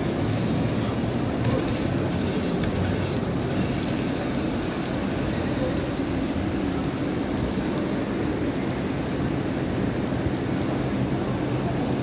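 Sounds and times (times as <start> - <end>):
fountain jets splashing: 0.0 - 12.0.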